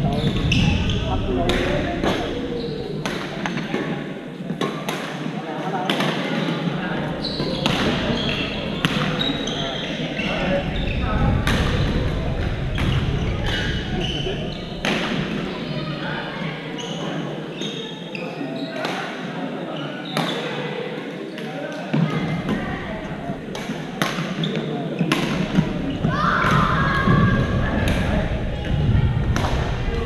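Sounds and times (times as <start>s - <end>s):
voices in sports hall: 0.0s - 30.0s
shoes squeaking on court floor: 7.1s - 11.0s, 16.7s - 18.8s.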